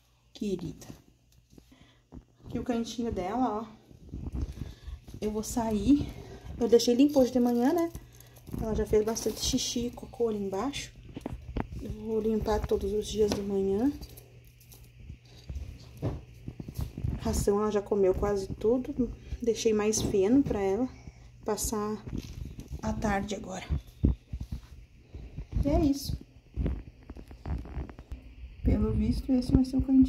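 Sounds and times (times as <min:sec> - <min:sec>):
low steady hum: 0:00.0 - 0:30.0
faint handling clicks and rustles: 0:00.4 - 0:28.2.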